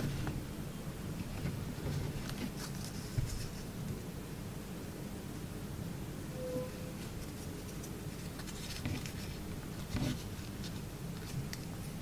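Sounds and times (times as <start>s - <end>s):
paper rustling and crinkling: 1.1s - 3.9s, 7.0s - 12.0s
light paper ticks: 7.7s - 12.0s.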